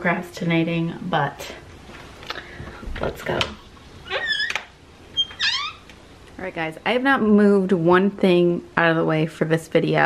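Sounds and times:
door hinges squeaking: 0:04.0 - 0:06.0.

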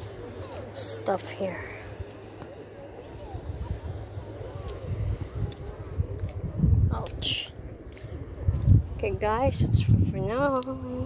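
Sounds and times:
faint distant voices: 0:00.0 - 0:09.7
wind buffeting microphone: 0:00.0 - 0:11.0.

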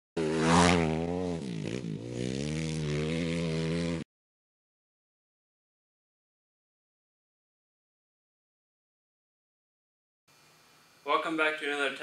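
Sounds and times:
dirt bike engine revving: 0:00.2 - 0:04.1.

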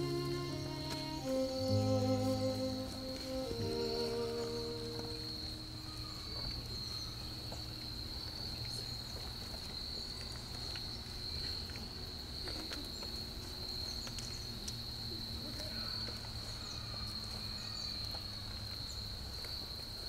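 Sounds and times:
processional music: 0:00.0 - 0:06.0
insect chirring: 0:00.0 - 0:08.5.

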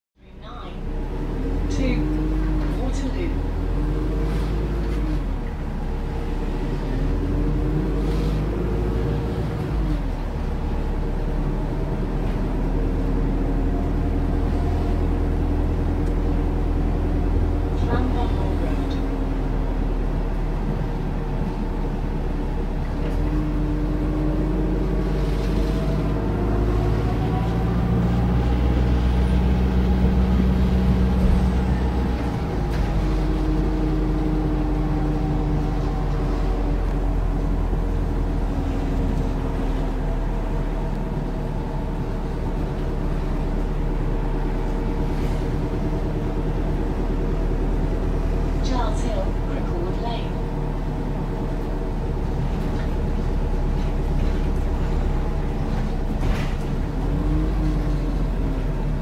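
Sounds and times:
bus drivetrain rumble: 0:00.2 - 0:59.0
bus drivetrain whine: 0:00.2 - 0:59.0.

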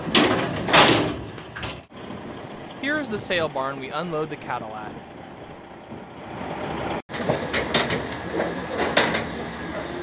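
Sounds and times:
truck running: 0:00.0 - 0:10.0.

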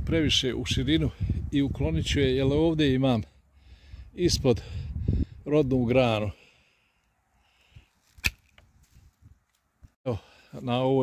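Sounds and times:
blade and twig clicks: 0:08.1 - 0:08.7
pruning shears snapping shoot: 0:08.1 - 0:08.7.

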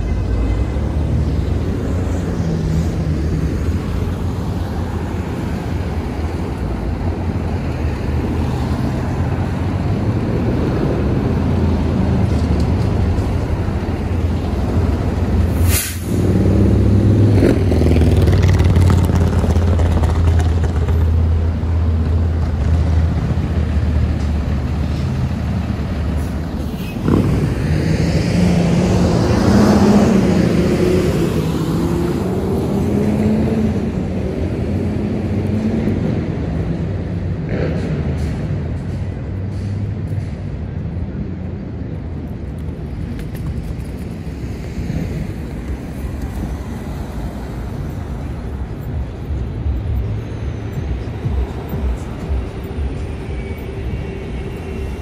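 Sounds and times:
traffic engines rumbling: 0:00.0 - 0:55.0
vehicle accelerating: 0:00.3 - 0:55.0.

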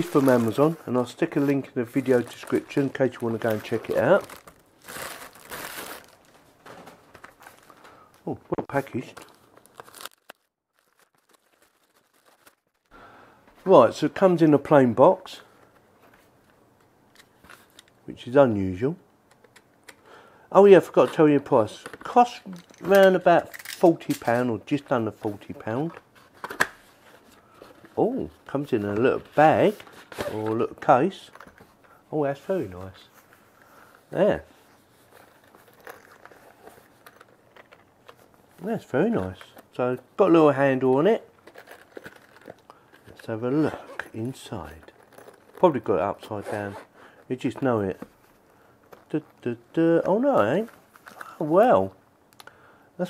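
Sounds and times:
plastic mailer bag crinkling: 0:00.0 - 0:08.0, 0:08.7 - 0:12.9, 0:41.1 - 0:43.4.

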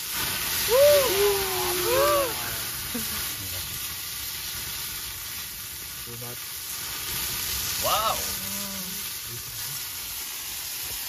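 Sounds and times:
flames flaring: 0:00.0 - 0:11.0
food sizzling in a pan: 0:00.0 - 0:11.0.

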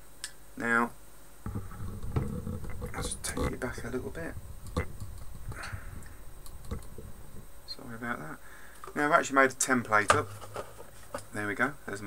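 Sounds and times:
camera handling rumble and knocks: 0:01.5 - 0:07.5.

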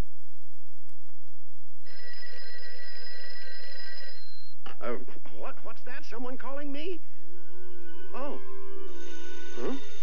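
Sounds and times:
telephone bell ringing: 0:01.8 - 0:04.6, 0:08.8 - 0:10.0.

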